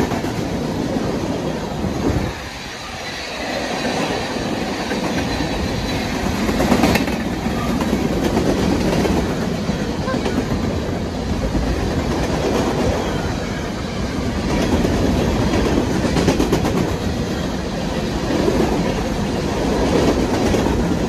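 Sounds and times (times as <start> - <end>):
freight train wheels rolling on rail: 0.0 - 21.0.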